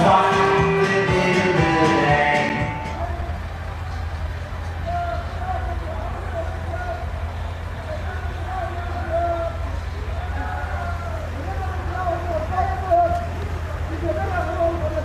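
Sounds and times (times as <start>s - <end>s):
diesel truck engines idling: 0.0s - 15.0s
people talking: 0.0s - 15.0s.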